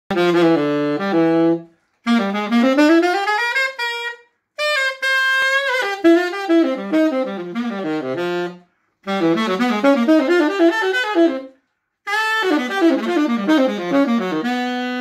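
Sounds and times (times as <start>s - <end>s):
tenor saxophone solo: 0.1s - 15.0s.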